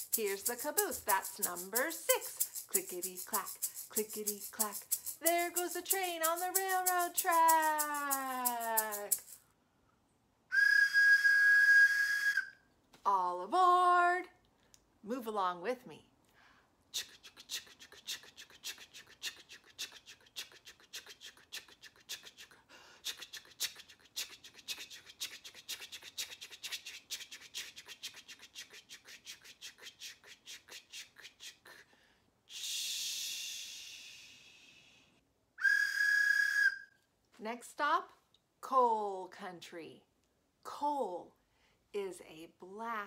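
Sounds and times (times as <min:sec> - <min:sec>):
train whistle toot: 0:10.5 - 0:12.5, 0:35.6 - 0:36.8
hiss of steam: 0:32.6 - 0:35.0.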